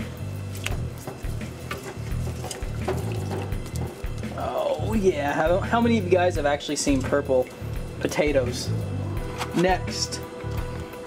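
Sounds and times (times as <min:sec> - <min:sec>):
potatoes splashing into water: 0:00.0 - 0:05.4
background music with bass line: 0:00.0 - 0:11.0.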